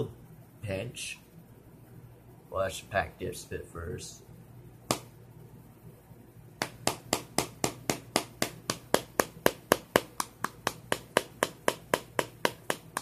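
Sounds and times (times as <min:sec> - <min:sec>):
tin lid tapping against finger: 0:06.6 - 0:13.0.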